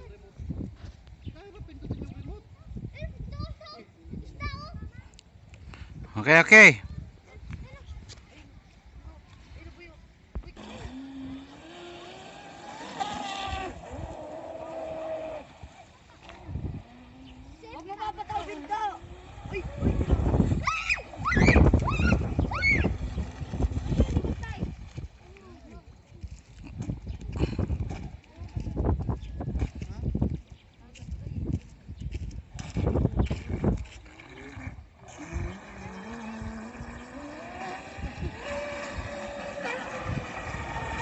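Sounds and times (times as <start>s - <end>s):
wind rumbling on microphone: 0.0s - 41.0s
rc boat motor whining: 9.8s - 26.0s, 32.6s - 41.0s.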